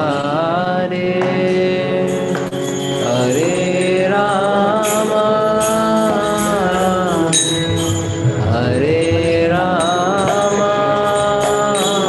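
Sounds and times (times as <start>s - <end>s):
jingling percussion: 1.2s - 12.0s
voices singing a chant: 3.0s - 12.0s.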